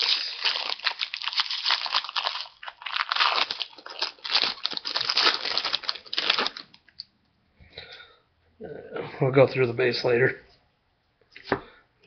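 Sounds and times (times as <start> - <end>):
foil wrapper tearing and crinkling: 0.0 - 6.8.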